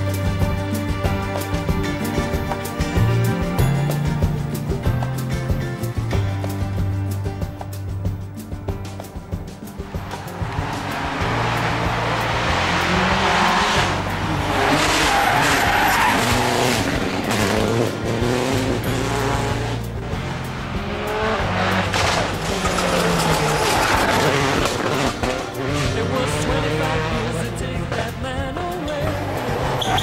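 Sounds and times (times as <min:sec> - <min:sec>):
background music: 0:00.0 - 0:30.0
car engine revving: 0:09.1 - 0:30.0
tyres skidding on tarmac: 0:09.7 - 0:28.2, 0:28.8 - 0:30.0.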